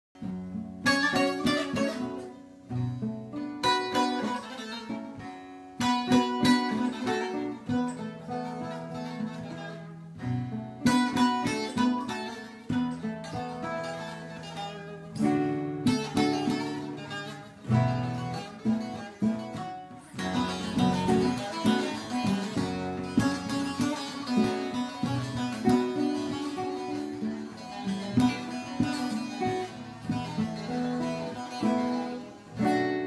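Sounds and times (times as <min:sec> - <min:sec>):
acoustic guitar strumming and picking: 0:00.2 - 0:33.0.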